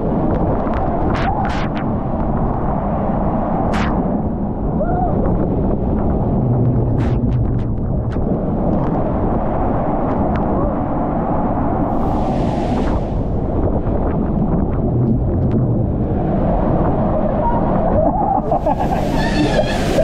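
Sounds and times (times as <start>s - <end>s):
wind on microphone: 0.0s - 20.0s
water rushing under a raft: 16.3s - 20.0s.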